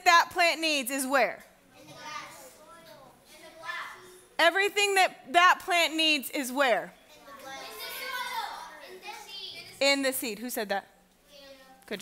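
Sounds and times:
children calling out: 7.3s - 9.8s.

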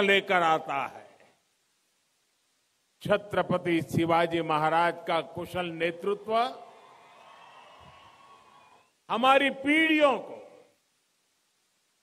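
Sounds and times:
faint steady hum: 0.0s - 12.0s
low even hiss: 0.0s - 12.0s.

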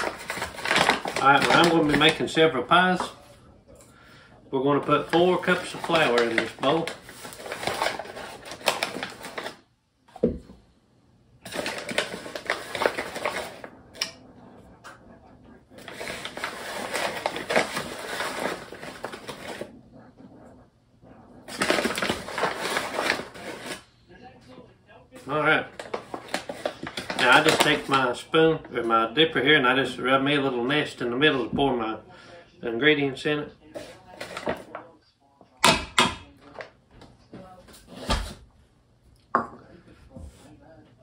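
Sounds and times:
paper sack rustling and crinkling: 0.0s - 3.2s, 4.8s - 9.6s, 11.4s - 14.2s, 15.7s - 19.8s, 21.5s - 23.9s, 25.2s - 28.2s, 33.7s - 34.8s.

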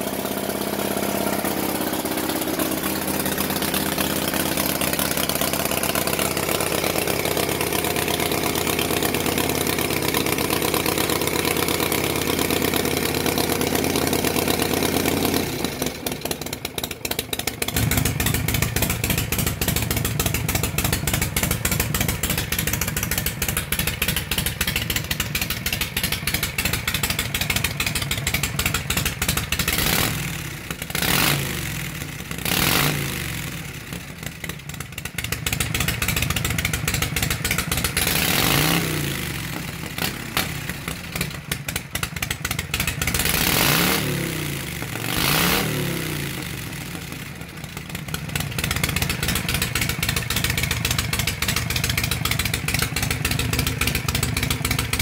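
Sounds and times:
motorcycle engine idling: 0.0s - 55.0s.

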